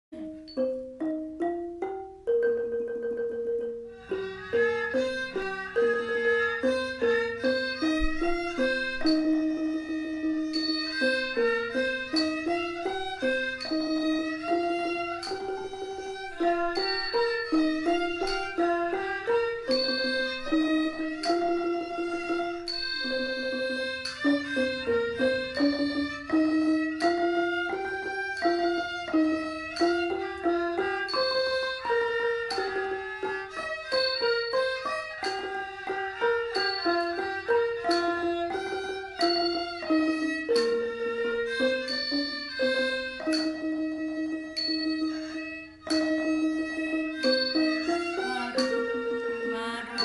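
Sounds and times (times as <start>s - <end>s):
xylophone ringing notes: 0.2s - 50.0s
bowed fiddle melody: 3.4s - 50.0s.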